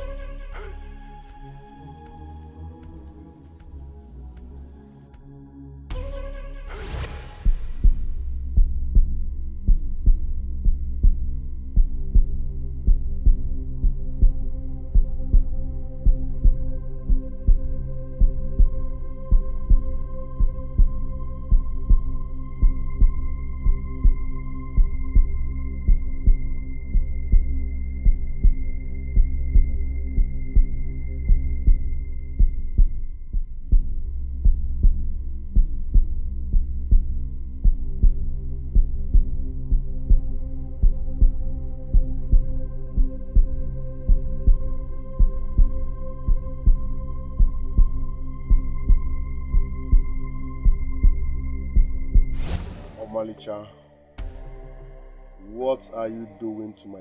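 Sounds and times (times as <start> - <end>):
heartbeat-like low thump: 6.8 - 53.2, 54.2 - 54.8
sustained droning pad: 12.4 - 33.2, 38.3 - 52.3, 53.2 - 57.0.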